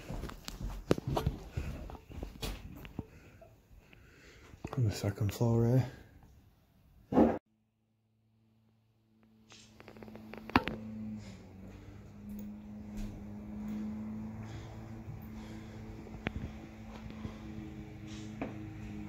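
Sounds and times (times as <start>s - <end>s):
low steady hum: 9.7s - 18.9s.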